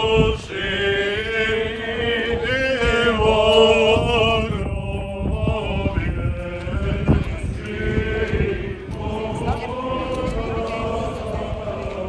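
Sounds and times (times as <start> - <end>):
shuffling footsteps on street: 0.0 - 12.0
voices singing a chant: 0.0 - 12.0.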